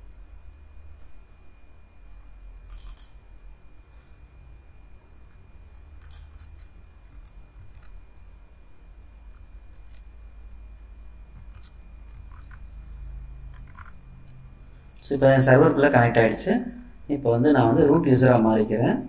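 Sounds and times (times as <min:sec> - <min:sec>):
low steady hum: 0:00.0 - 0:19.0
computer mouse and keyboard clicks: 0:02.7 - 0:03.2, 0:06.0 - 0:08.0, 0:11.3 - 0:12.7, 0:13.5 - 0:14.4.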